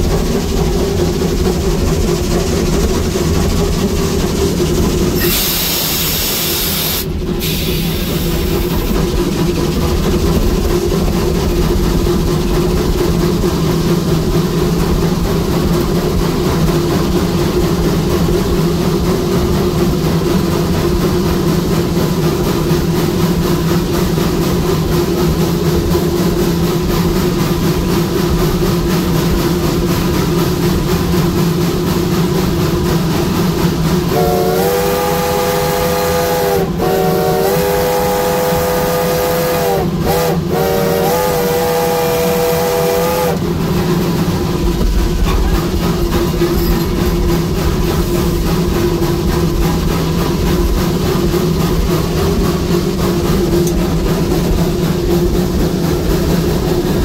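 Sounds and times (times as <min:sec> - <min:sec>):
steam locomotive hiss and hum: 0:00.0 - 0:57.0
chime steam whistle blasts: 0:05.2 - 0:08.4, 0:34.1 - 0:43.4.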